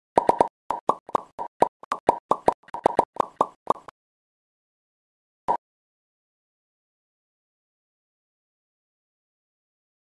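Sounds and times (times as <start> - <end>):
cartoon pop sound effects: 0.2 - 3.9.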